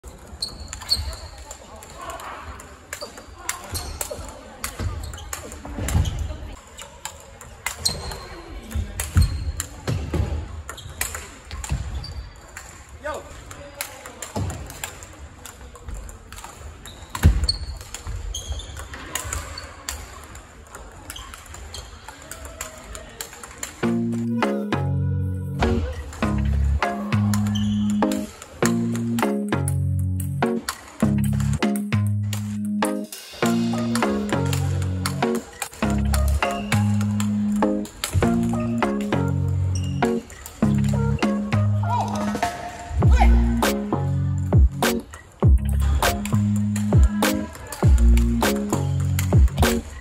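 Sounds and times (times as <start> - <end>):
chatter of players: 0.0 - 50.0.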